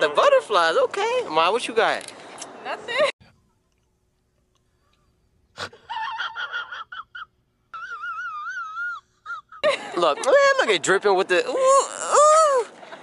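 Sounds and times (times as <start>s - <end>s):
man quavering wail: 11.5s - 12.7s.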